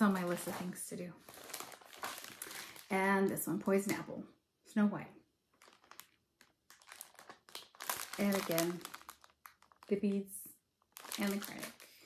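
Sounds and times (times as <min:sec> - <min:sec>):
plastic sleeve crinkling: 0:00.0 - 0:04.0, 0:05.5 - 0:12.0.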